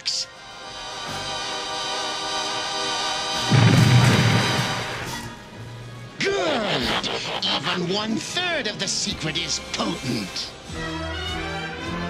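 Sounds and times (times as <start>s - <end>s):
loud crash with deep rumble: 3.4s - 5.3s.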